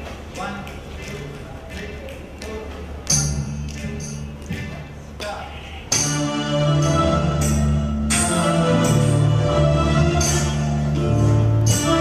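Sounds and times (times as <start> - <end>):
light percussive hits: 0.0 - 6.3
full band playing loudly: 5.9 - 12.0
low sustained keyboard notes: 5.9 - 12.0.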